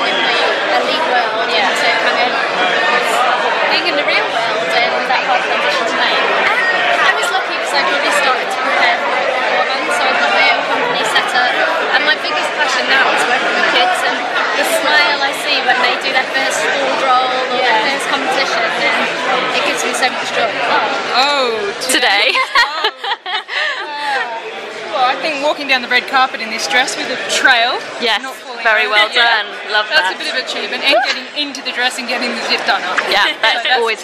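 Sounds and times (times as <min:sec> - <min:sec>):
crowd of voices talking: 0:00.0 - 0:34.0.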